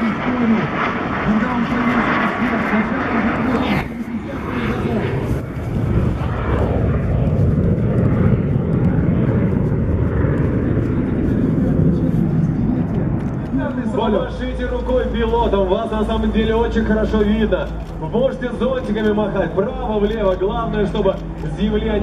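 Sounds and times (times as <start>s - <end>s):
jet engines roaring: 0.0s - 22.0s
man talking: 13.5s - 22.0s.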